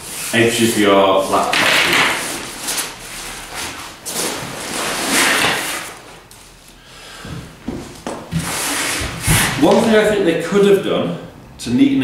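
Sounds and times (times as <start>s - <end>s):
fabric rustling and rubbing: 0.0s - 6.7s.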